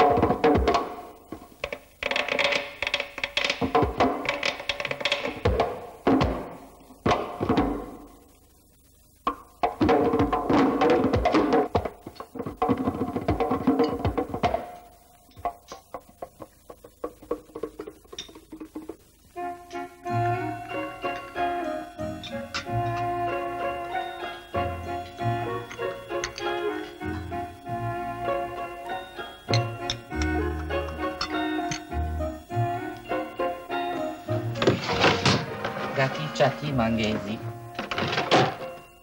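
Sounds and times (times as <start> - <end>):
percussive film soundtrack music: 0.0 - 8.2, 9.2 - 38.8.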